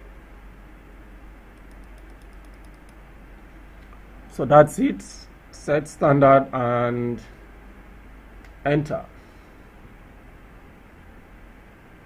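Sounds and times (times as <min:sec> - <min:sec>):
steady low hum: 0:00.0 - 0:12.0
computer clicks: 0:01.6 - 0:03.0.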